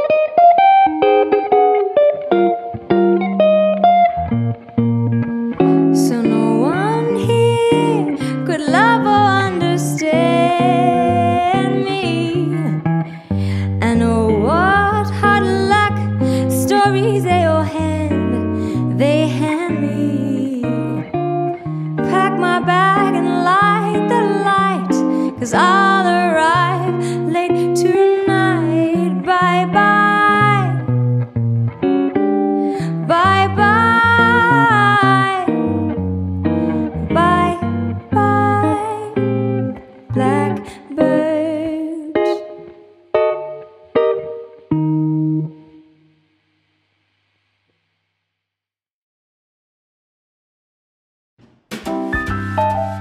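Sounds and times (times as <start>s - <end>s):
jazz ballad on electric guitar: 0.0s - 45.9s.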